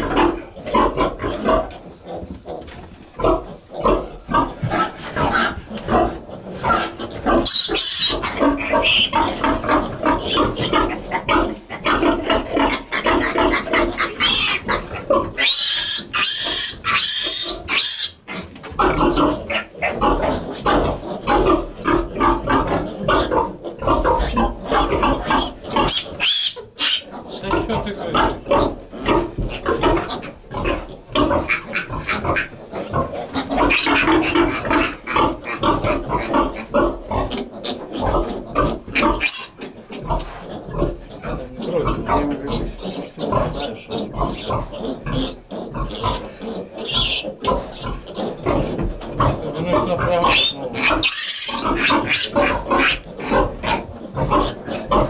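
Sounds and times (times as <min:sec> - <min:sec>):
piglets squealing and grunting: 0:00.0 - 0:55.0
shrill piglet screams: 0:06.7 - 0:09.4, 0:14.0 - 0:14.6, 0:15.4 - 0:18.2, 0:24.2 - 0:27.1, 0:39.1 - 0:39.6, 0:46.8 - 0:48.0, 0:50.3 - 0:53.8.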